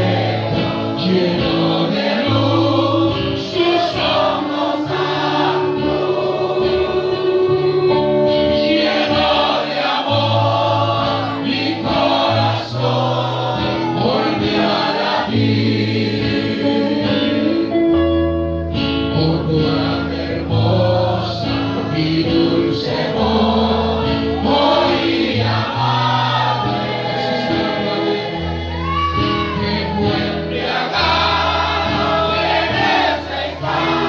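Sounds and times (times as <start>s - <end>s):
congregation singing worship song: 0.0s - 18.0s, 18.8s - 34.0s
guitar: 0.0s - 34.0s
sustained bass notes: 0.0s - 34.0s.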